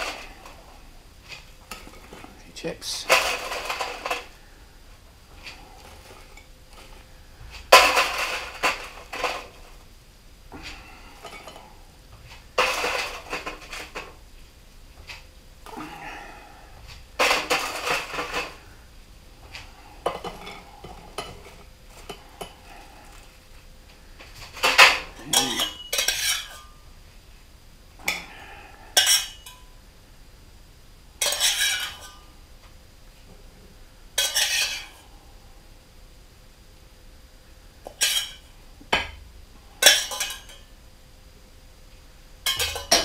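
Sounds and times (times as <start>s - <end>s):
metal spoon scraping saucepan: 25.3s - 26.7s, 31.2s - 32.2s, 34.2s - 35.0s.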